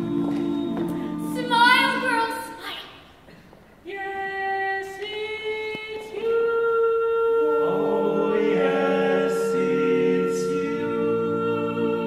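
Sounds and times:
voices and orchestra chord: 1.2s - 2.7s.

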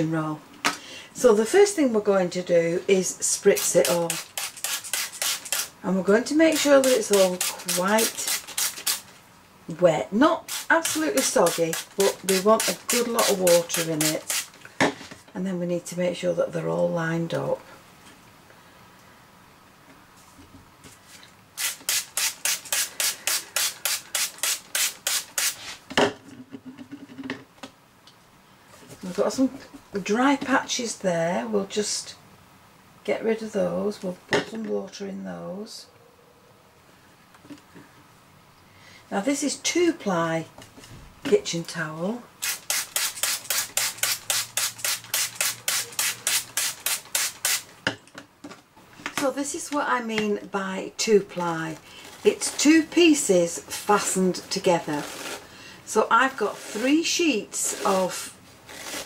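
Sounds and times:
spray bottle squirting: 3.6s - 5.8s, 6.5s - 9.1s, 10.4s - 14.6s, 21.6s - 25.6s, 42.4s - 47.7s.

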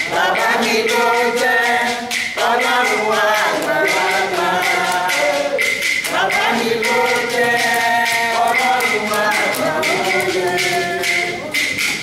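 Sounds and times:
women singing a hymn: 0.0s - 11.7s.

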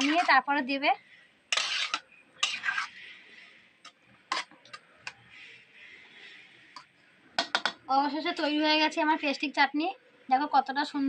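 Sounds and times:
spoon scraping cookware: 0.0s - 0.4s, 1.5s - 3.2s.

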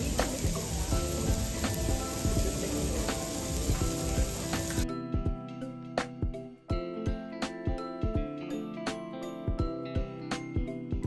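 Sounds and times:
food sizzling: 0.0s - 4.9s
light melodic music: 0.0s - 11.0s.

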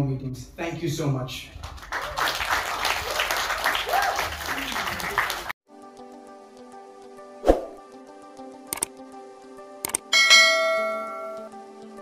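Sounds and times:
soft background music: 5.7s - 12.0s
bright bell chime: 10.1s - 11.5s.

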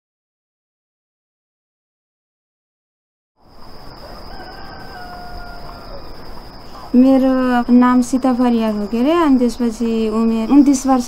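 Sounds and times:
high insect whine: 3.4s - 11.0s
rooster crowing: 3.5s - 6.9s.

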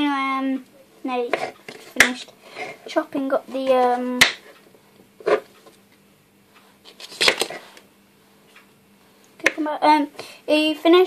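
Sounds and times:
faint steady hum: 0.0s - 11.0s
knife chopping on plastic board: 7.1s - 7.6s.

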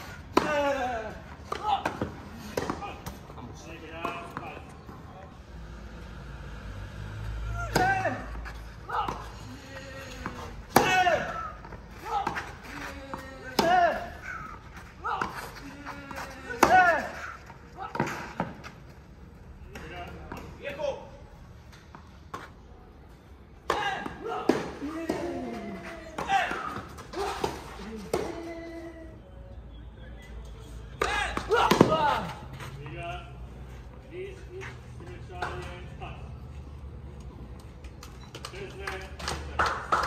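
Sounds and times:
racket striking tennis ball: 7.6s - 8.0s, 10.2s - 11.5s, 13.4s - 14.4s.

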